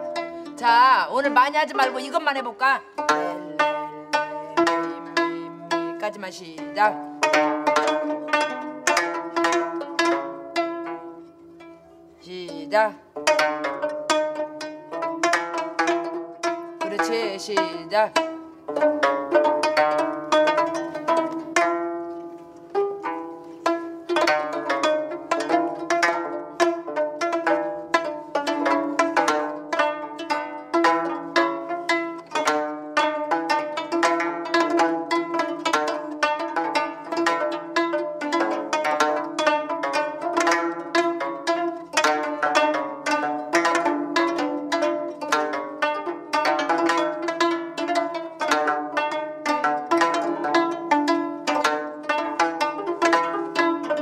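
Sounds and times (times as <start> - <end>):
plucked zither melody: 0.0 - 54.0.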